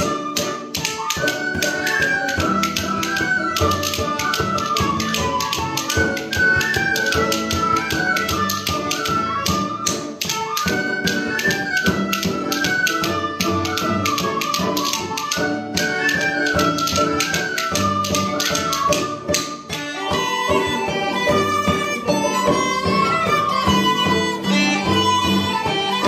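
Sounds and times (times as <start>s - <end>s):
frame drum beat: 0.0s - 26.0s
sharp percussive taps: 0.0s - 26.0s
tin whistles playing melody: 0.0s - 26.0s.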